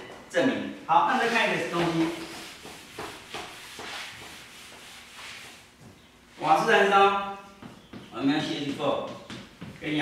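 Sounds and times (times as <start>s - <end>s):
eraser scrubbing blackboard: 1.1s - 5.7s.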